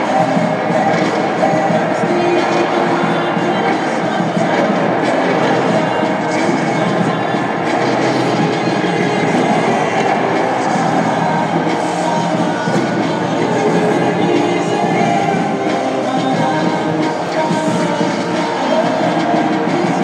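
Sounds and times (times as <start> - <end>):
crowd noise: 0.0 - 20.0
loud music over sound system: 0.0 - 20.0.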